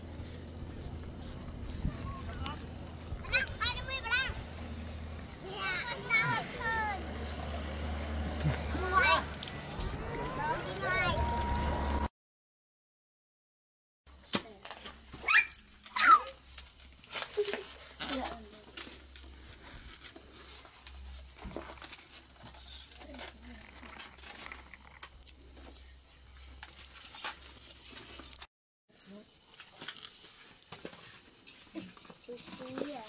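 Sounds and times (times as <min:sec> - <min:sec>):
children's voices chattering: 0:01.2 - 0:12.1.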